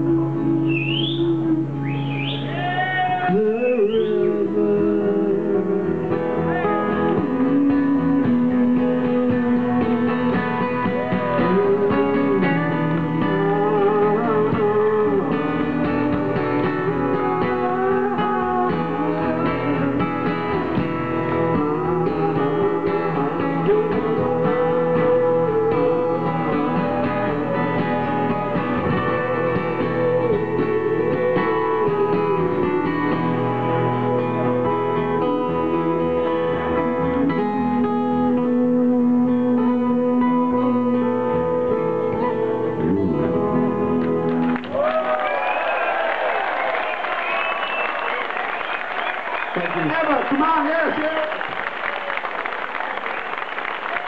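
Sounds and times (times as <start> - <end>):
acoustic guitar strumming: 0.0 - 44.7
sliding lead guitar melody: 0.0 - 44.8.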